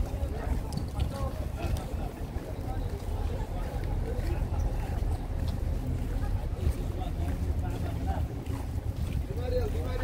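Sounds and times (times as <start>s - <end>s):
faint voices of passers-by: 0.0s - 10.0s.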